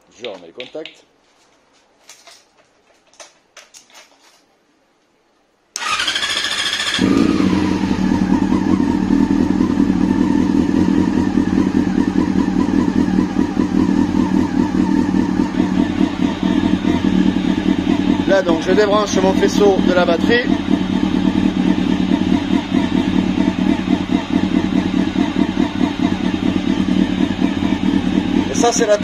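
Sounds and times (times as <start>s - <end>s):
electric starter whine: 5.8s - 9.2s
motorcycle engine idling: 5.8s - 29.0s.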